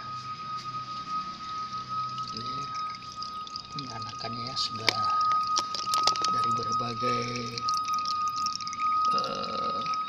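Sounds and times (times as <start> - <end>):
thin whistling tone: 0.0 - 10.0
water gurgling and dripping: 1.0 - 10.0.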